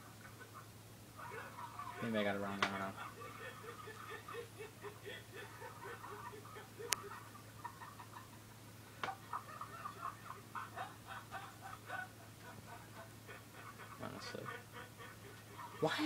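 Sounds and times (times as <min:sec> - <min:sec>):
steady low hum: 0:00.0 - 0:16.0
person laughing in gasping bursts: 0:02.9 - 0:07.3.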